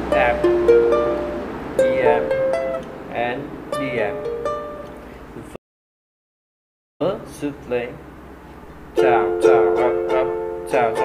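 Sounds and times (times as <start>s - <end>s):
ukulele chords: 0.0s - 3.1s, 3.7s - 5.1s, 9.0s - 11.0s.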